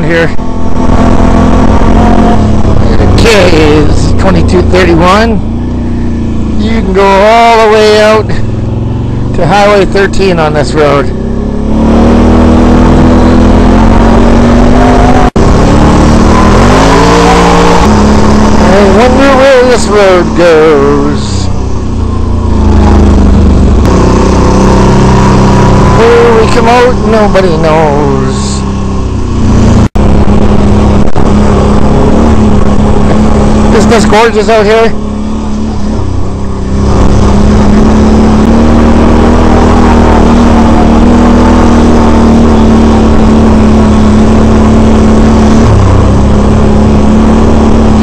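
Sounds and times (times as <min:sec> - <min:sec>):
atv engine revving: 0:00.0 - 0:48.0.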